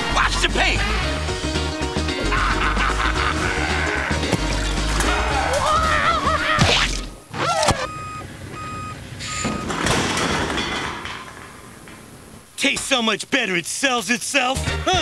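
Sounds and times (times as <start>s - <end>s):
music with heavy bass: 0.0s - 7.1s
truck reversing alarm beeps: 7.2s - 9.8s.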